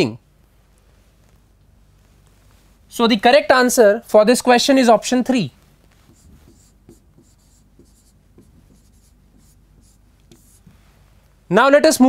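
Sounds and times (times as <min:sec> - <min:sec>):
chalk scratching on chalkboard: 0:05.9 - 0:10.8
chalk tapping on chalkboard: 0:06.0 - 0:10.8.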